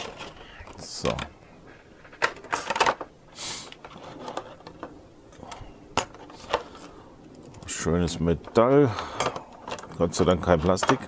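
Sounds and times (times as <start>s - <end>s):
plastic rustling: 0.0s - 11.0s
plastic tray crackling and clicking: 8.4s - 11.0s.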